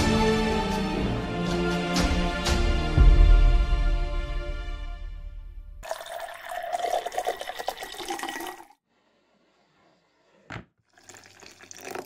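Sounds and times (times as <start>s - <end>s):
water pouring into a kettle: 5.8s - 8.8s, 10.9s - 12.0s.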